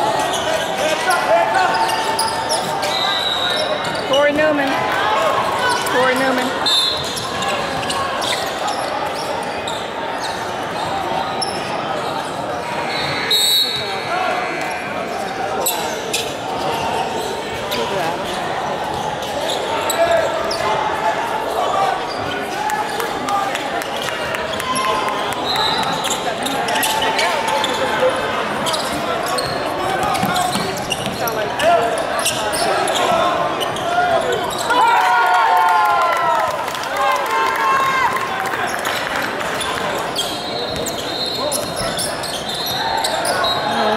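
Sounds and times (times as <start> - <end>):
echoing voices: 41.4 - 43.9.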